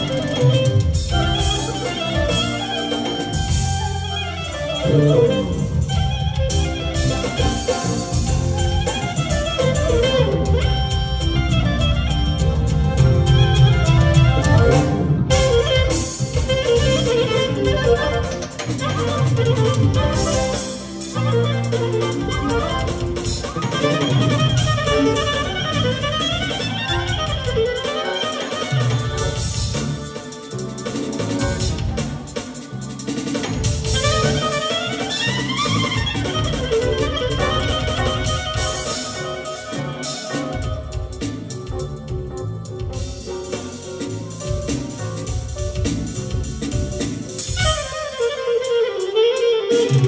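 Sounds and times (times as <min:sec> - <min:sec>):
clarinet wavering melody: 0:00.0 - 0:50.0
keyboards: 0:00.0 - 0:50.0
live band music: 0:00.0 - 0:50.0
steady drum beat: 0:00.0 - 0:50.0.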